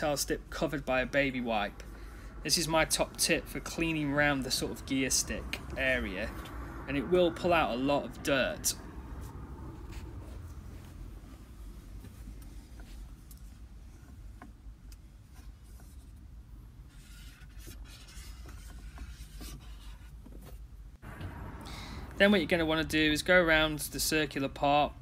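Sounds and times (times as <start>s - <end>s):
low steady rumble: 0.0s - 20.0s
scratchy rubbing strokes: 15.2s - 20.7s.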